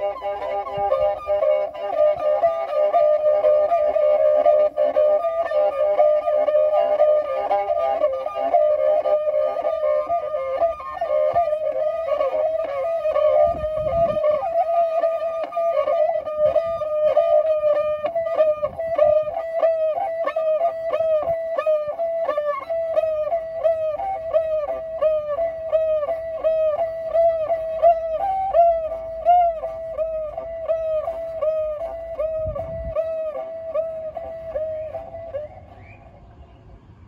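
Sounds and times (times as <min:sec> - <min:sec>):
bowed fiddle playing: 0:00.0 - 0:36.0.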